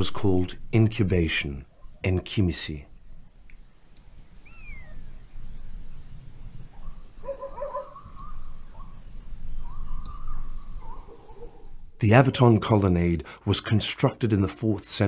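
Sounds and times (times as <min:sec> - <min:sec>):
animal calls: 0:06.6 - 0:11.8.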